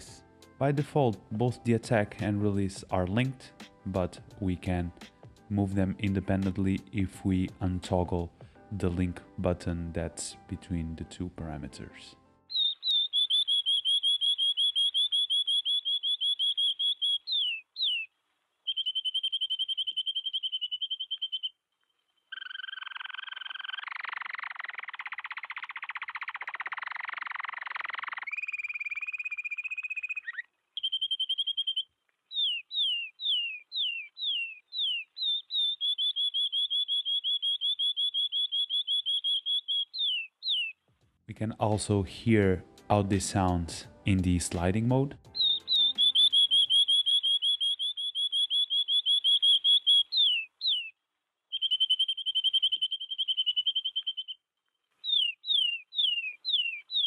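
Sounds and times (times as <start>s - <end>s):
canary song trills: 12.5s - 40.9s, 45.2s - 57.0s.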